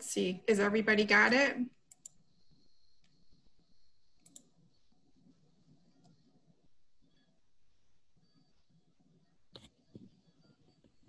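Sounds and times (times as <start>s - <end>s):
computer mouse clicks: 1.8s - 6.4s, 9.5s - 11.0s.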